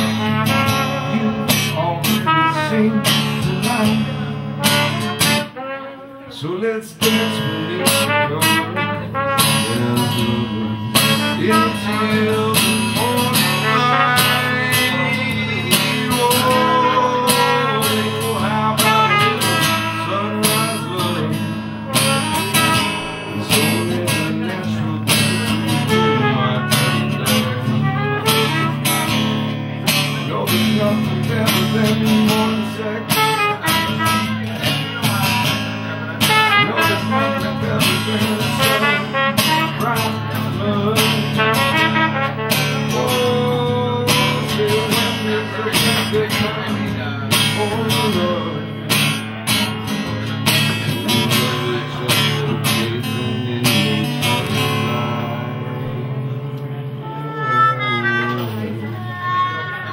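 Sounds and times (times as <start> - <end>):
horn playing a melody: 0.0 - 6.4, 7.6 - 12.3, 13.0 - 23.9, 25.4 - 29.5, 33.0 - 34.6, 36.1 - 40.3, 41.3 - 43.6, 56.9 - 59.9
acoustic guitar strumming: 0.0 - 59.9.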